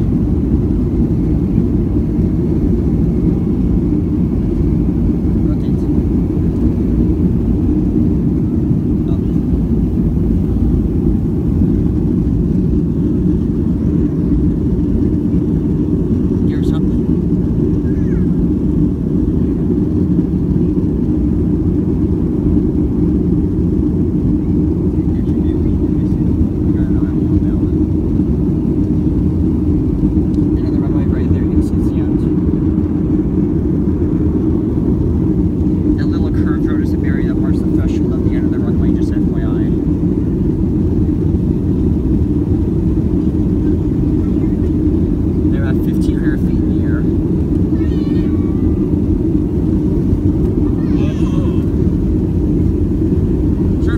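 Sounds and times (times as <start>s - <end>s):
jet engines roaring in cabin: 0.0s - 53.9s
faint passenger voices: 0.6s - 53.9s.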